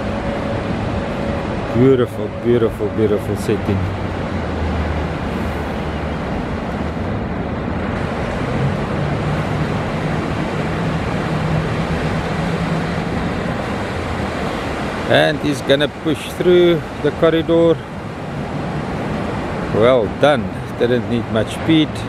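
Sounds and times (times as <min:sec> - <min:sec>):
outboard motors running: 0:00.0 - 0:22.0
waves washing: 0:00.0 - 0:22.0.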